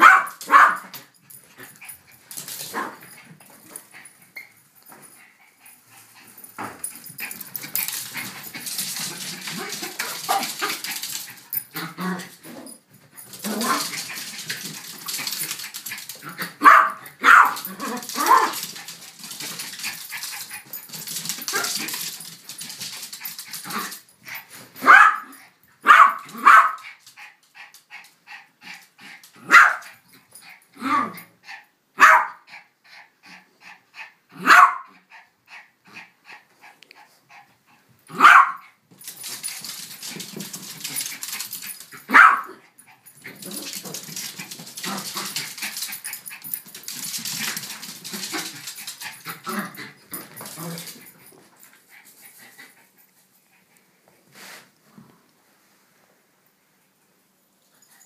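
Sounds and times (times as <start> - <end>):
small dogs barking: 0.0 - 0.9, 16.6 - 18.6, 24.8 - 26.8, 29.4 - 29.8, 32.0 - 32.4, 34.4 - 34.9, 38.1 - 38.6, 42.0 - 42.6
dogs scuffling: 0.0 - 5.2, 5.9 - 25.0, 38.9 - 52.8.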